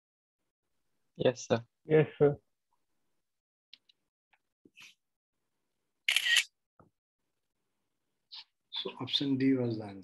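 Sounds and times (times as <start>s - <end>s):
camera shutter sound effect: 6.1s - 6.5s.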